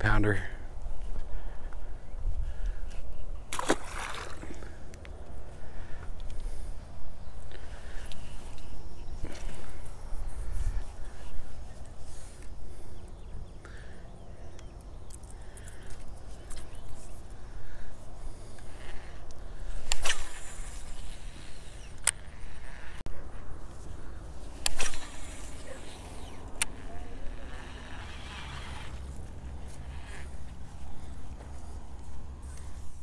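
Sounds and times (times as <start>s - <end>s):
wind rumbling on microphone: 0.6s - 13.4s
sharp clicks: 21.8s - 22.5s
fishing reel handling noise: 24.6s - 30.5s.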